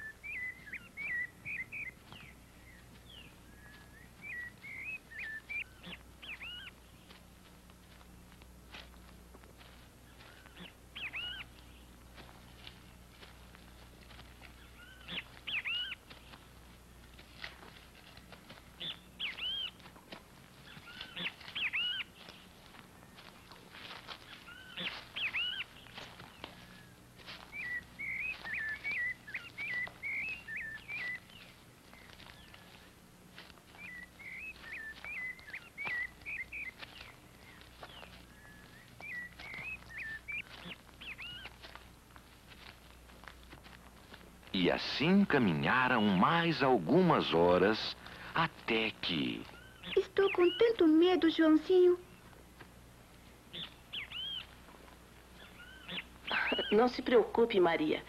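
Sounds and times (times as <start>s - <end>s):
rapid bird twittering: 0.0s - 7.2s, 10.0s - 13.3s, 14.1s - 16.6s, 17.9s - 19.9s, 20.6s - 33.0s, 33.6s - 41.8s, 44.5s - 52.3s, 53.4s - 58.0s
birds chirping: 0.0s - 58.0s.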